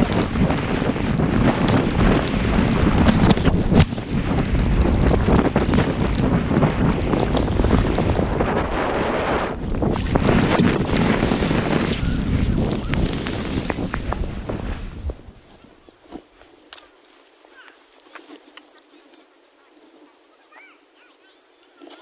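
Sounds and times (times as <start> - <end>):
wind buffeting microphone: 0.0 - 15.8.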